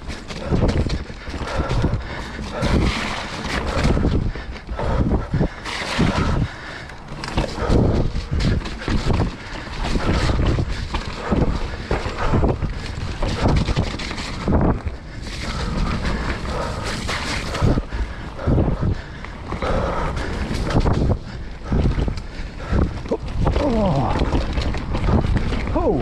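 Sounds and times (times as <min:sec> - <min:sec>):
bike rattles and knocks: 0:00.0 - 0:26.0
wind buffeting microphone: 0:00.0 - 0:26.0
tyre rumble over ground: 0:04.9 - 0:26.0
person exclaiming: 0:23.6 - 0:24.2.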